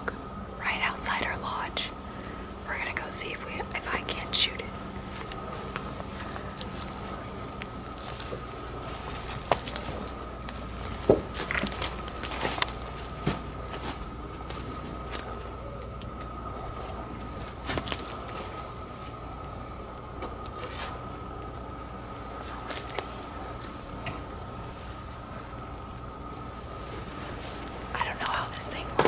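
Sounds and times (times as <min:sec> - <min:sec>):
faint high-pitched hum: 0:00.0 - 0:29.0.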